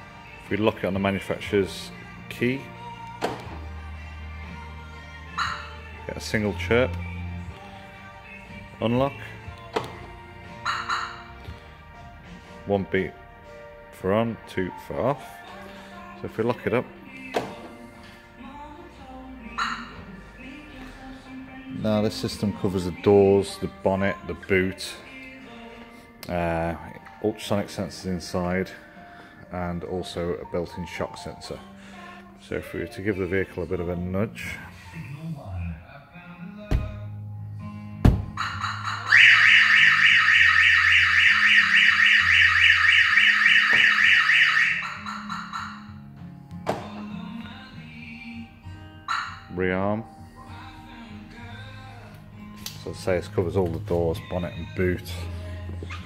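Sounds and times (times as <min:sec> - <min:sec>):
alarm siren chirp: 0:05.3 - 0:05.8, 0:10.6 - 0:11.3, 0:19.5 - 0:20.1, 0:38.4 - 0:46.0, 0:49.1 - 0:49.5
knocks on van body: 0:38.0 - 0:38.4.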